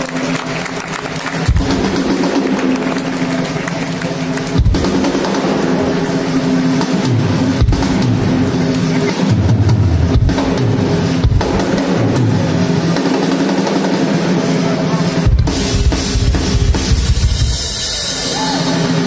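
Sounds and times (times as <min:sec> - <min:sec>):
drum hits: 0:01.4 - 0:03.6, 0:04.3 - 0:14.3.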